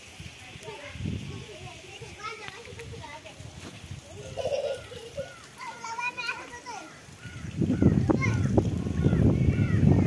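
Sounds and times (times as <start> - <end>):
young children chattering: 0.1 - 10.0.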